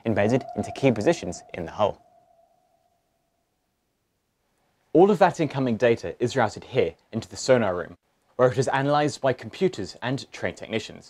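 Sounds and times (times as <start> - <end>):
sonar ping: 0.0 - 3.4.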